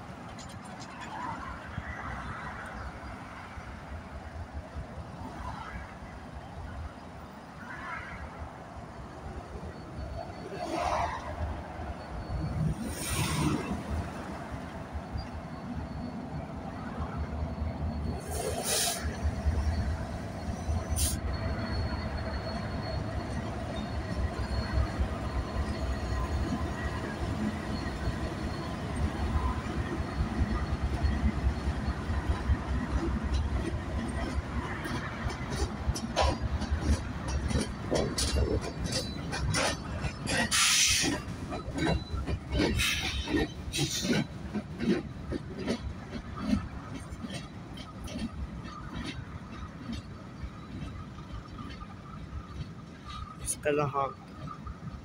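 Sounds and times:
steel wheels on rail: 0.0 - 55.0
locomotive engine rumble: 8.6 - 55.0
short hisses: 18.3 - 19.2.

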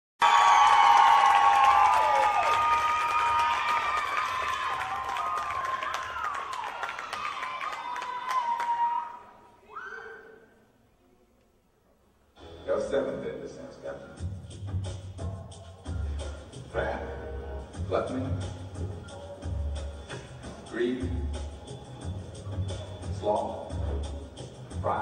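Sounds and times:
audience cheering and clapping: 0.2 - 9.4
high-pitched shouts and screams: 2.7 - 10.4.

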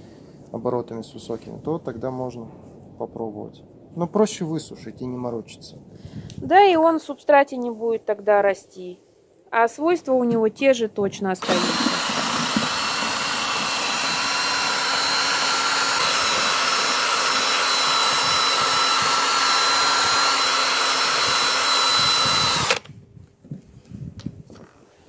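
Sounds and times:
cordless drill motor whine: 11.4 - 23.0.

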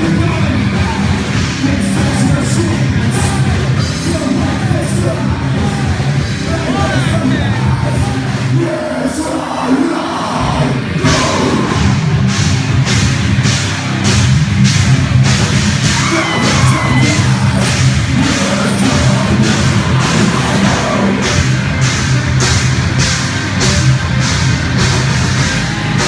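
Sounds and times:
distorted electric guitars: 0.0 - 26.0
drum kit with cymbal hits: 0.0 - 26.0
shouted vocals: 15.8 - 21.5.

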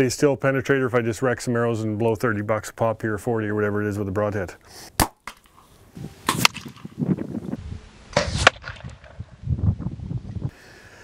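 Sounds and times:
bow string snap: 5.0 - 7.1, 8.1 - 9.3.

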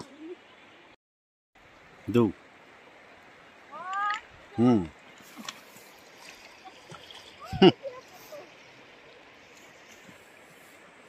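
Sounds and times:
river water flowing: 0.0 - 1.0, 1.6 - 11.0.

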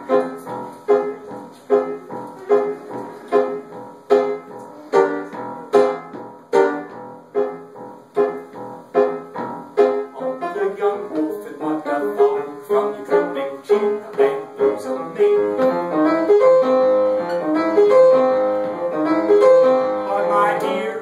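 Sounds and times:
upright piano chords: 0.0 - 21.0.

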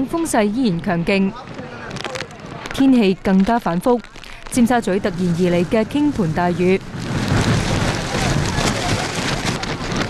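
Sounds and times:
heavy rain hitting ground: 1.3 - 10.0.

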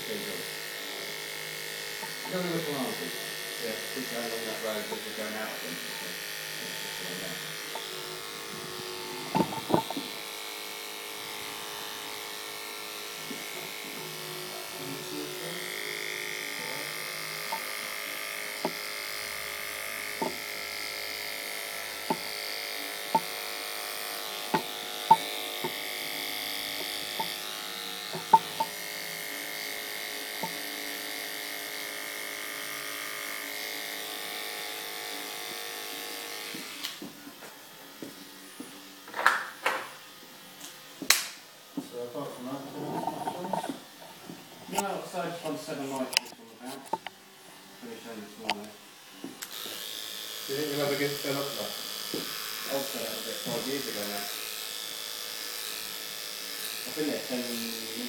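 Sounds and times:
electric hair clippers buzzing: 0.0 - 58.0.

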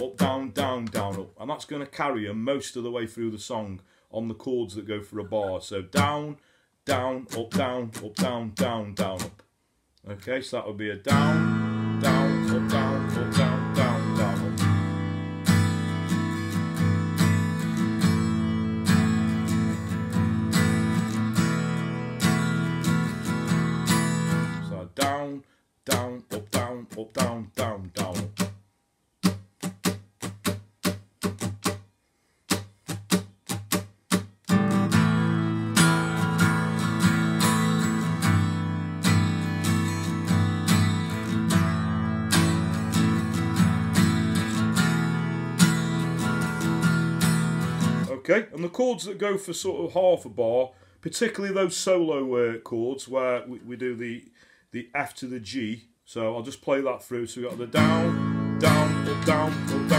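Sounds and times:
acoustic guitar strumming chords: 0.0 - 1.3, 5.3 - 9.4, 11.0 - 28.6, 29.2 - 31.9, 32.5 - 48.2, 57.4 - 59.9.

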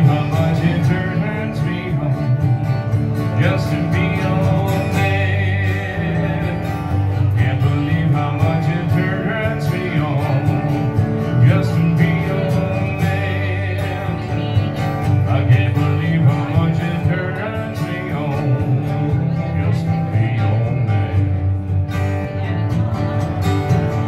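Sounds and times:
acoustic guitar country song: 0.0 - 24.0
man singing: 0.0 - 24.0.

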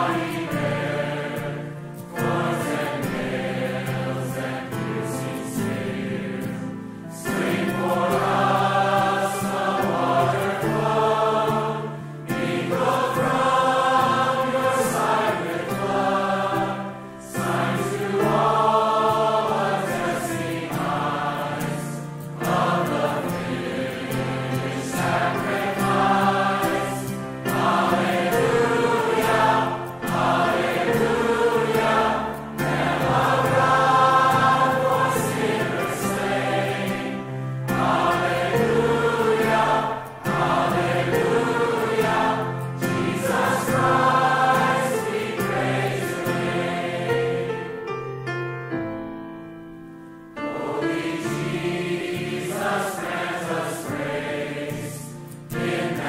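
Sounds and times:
choir singing a hymn: 0.0 - 48.0, 50.3 - 56.0.

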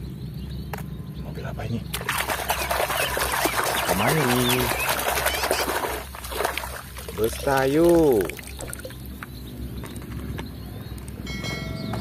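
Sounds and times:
splashing muddy water: 1.9 - 9.2.

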